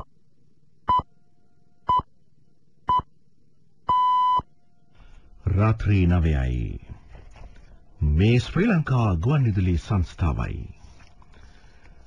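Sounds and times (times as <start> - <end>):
radio time signal beeps: 3.9 - 4.5
newsreader speaking: 5.4 - 11.1.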